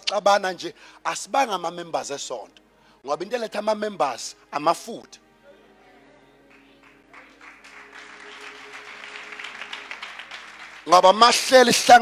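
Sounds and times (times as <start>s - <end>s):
congregation applauding: 6.4s - 12.0s.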